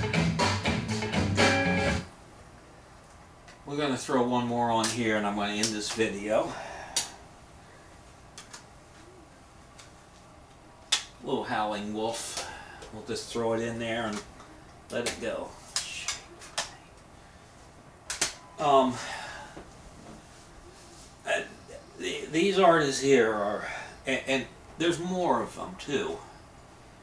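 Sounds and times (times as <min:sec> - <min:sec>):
cd case clicking: 0:08.3 - 0:08.7, 0:18.1 - 0:18.4
man saying uh: 0:18.6 - 0:19.2.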